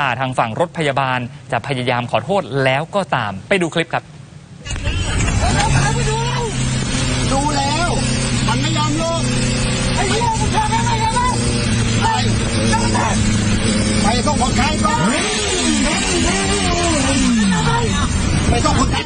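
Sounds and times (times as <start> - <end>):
vehicle engine drone and road noise: 4.2 - 19.0
people talking: 4.6 - 19.0.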